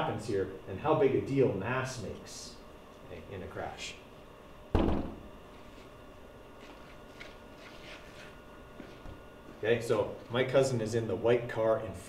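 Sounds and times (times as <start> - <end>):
loud thump: 4.7 - 5.3.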